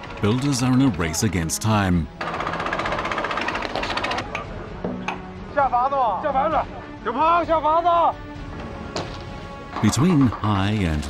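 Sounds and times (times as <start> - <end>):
steel pipe cutting rattle: 2.2 - 4.3.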